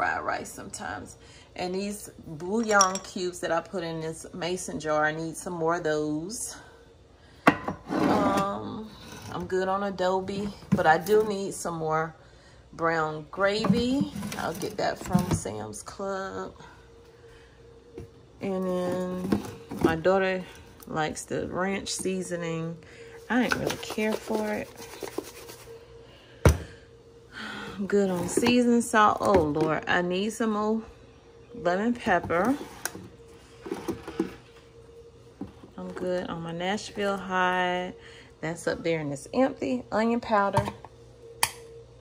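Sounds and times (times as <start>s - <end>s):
jars clicking: 2.6s - 3.2s.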